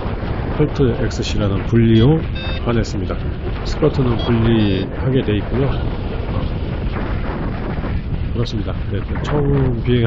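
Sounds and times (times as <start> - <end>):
wind rushing over microphone: 0.0 - 10.0.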